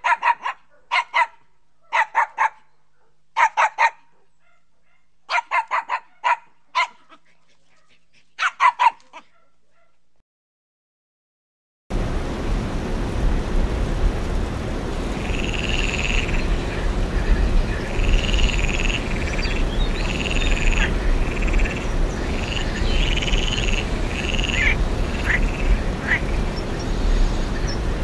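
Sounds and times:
steady low rumble: 0:11.9 - 0:28.0
tree frog trilling calls: 0:15.2 - 0:27.8.

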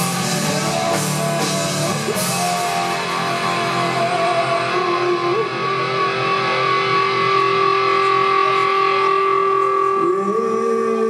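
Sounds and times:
distorted electric guitars chord: 0:00.0 - 0:11.0
rock band playing: 0:00.0 - 0:11.0.

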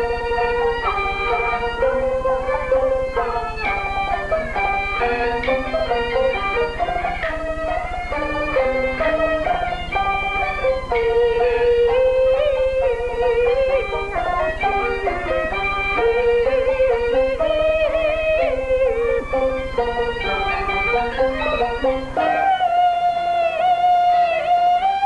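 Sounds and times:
high-pitched fiddle melody: 0:00.0 - 0:25.0
plucked strings: 0:00.0 - 0:25.0.

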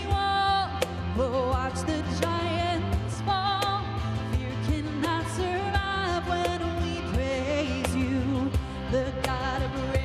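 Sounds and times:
cajon beat: 0:00.0 - 0:10.0
strummed acoustic guitar: 0:00.0 - 0:10.0
woman singing: 0:00.0 - 0:10.0.

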